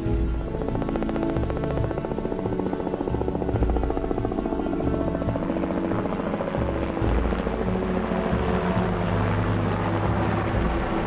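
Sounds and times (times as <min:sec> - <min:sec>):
helicopter rotor beating: 0:00.0 - 0:11.0.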